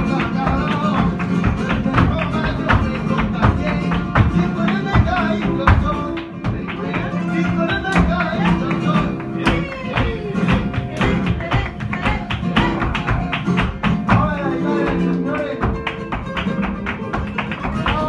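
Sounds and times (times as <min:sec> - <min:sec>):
guitars strummed and plucked: 0:00.0 - 0:18.0
hand-clapping: 0:00.0 - 0:18.0
man singing: 0:00.0 - 0:18.0.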